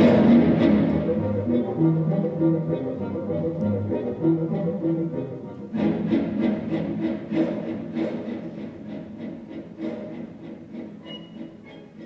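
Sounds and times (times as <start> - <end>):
orchestral strings music: 0.0 - 12.0.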